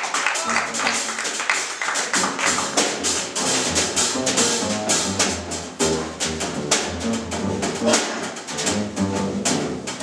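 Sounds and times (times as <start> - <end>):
upright double bass: 0.4 - 1.4, 2.1 - 10.0.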